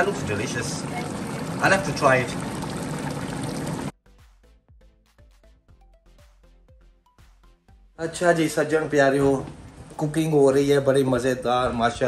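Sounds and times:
curry bubbling in a pan: 0:00.0 - 0:03.9
soft background music: 0:04.0 - 0:12.0.

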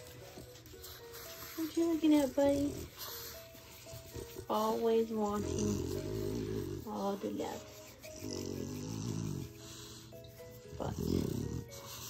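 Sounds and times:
soft background music: 0:00.0 - 0:12.0
dog grunting: 0:05.2 - 0:07.2, 0:08.0 - 0:09.7, 0:10.7 - 0:11.9.

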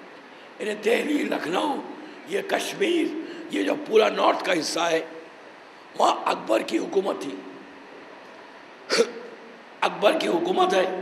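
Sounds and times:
low steady hiss: 0:00.0 - 0:11.0
man speaking: 0:00.6 - 0:05.1, 0:06.0 - 0:07.4, 0:09.8 - 0:11.0.

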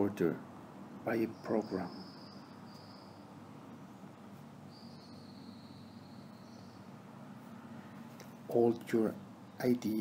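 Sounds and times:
high insect trill: 0:01.3 - 0:03.3, 0:04.7 - 0:06.9.

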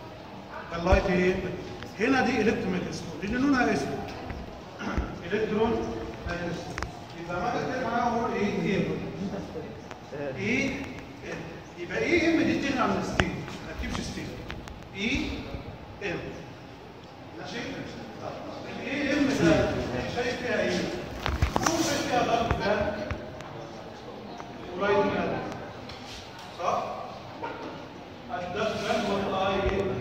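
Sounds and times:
man speaking: 0:00.5 - 0:16.5, 0:17.4 - 0:23.1
man lecturing: 0:00.6 - 0:16.6, 0:17.4 - 0:23.2, 0:28.3 - 0:30.0.

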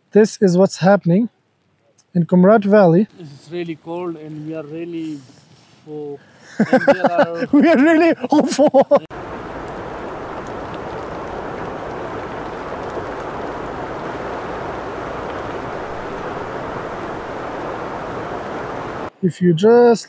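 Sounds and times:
heavy rain falling: 0:09.1 - 0:19.1.

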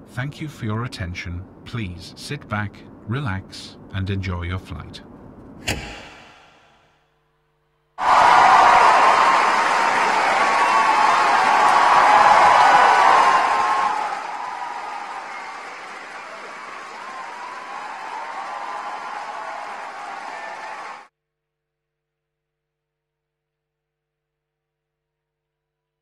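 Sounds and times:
audience applauding: 0:08.0 - 0:21.1
whoops: 0:08.0 - 0:21.1.

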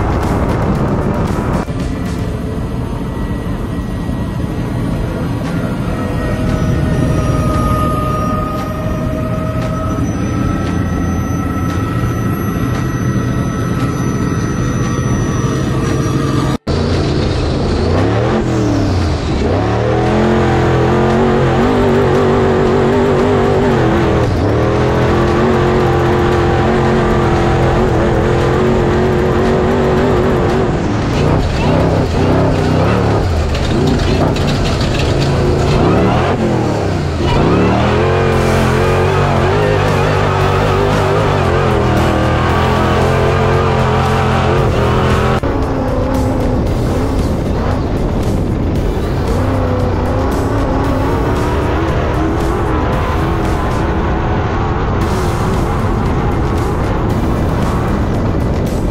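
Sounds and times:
engine revving while driving: 0:03.5 - 0:58.9.

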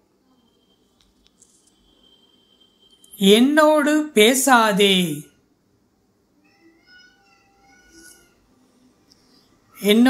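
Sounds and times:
faint wavering pitched call: 0:00.2 - 0:03.2, 0:06.4 - 0:08.4.

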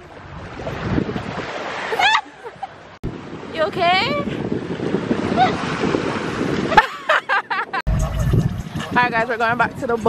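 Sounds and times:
low rumble: 0:07.9 - 0:09.2.

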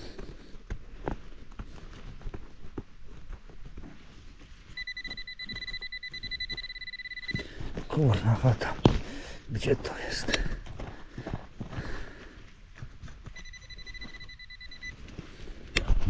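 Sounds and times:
metal detector tone: 0:04.7 - 0:08.2, 0:13.3 - 0:15.0.

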